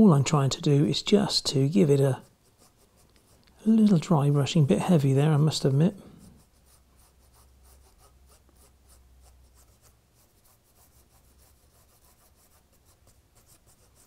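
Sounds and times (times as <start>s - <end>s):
paintbrush scratchy strokes: 0.8s - 14.0s.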